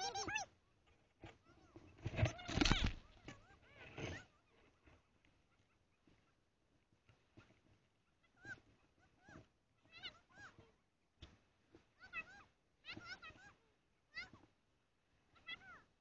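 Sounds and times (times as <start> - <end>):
high-pitched animal calls: 0.0 - 0.5.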